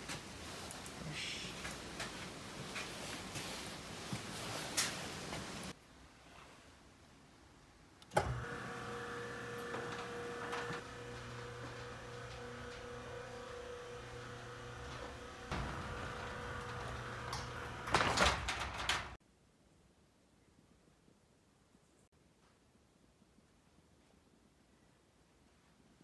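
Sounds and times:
roller shutter motor humming: 8.2 - 19.2
shutter rattling: 8.2 - 19.2.

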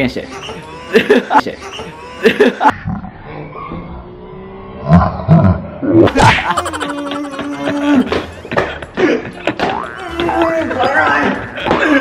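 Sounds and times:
man laughing: 6.2 - 9.3.

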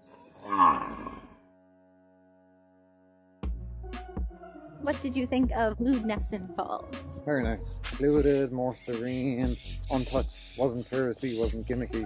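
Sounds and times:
cow mooing: 0.3 - 1.4.

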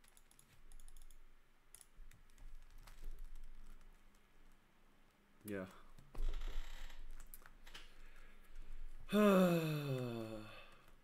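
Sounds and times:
computer keyboard typing: 0.0 - 4.0.

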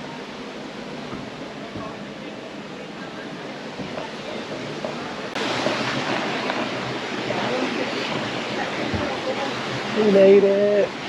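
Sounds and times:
rushing creek water: 0.0 - 11.0
waterwheel turning: 0.0 - 11.0.

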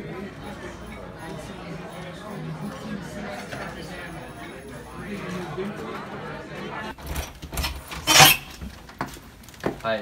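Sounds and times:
murmur of overlapping voices: 0.0 - 10.0.

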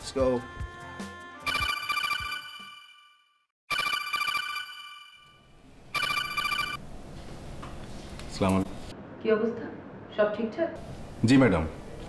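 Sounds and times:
electronic phone ringtone: 1.4 - 6.8.

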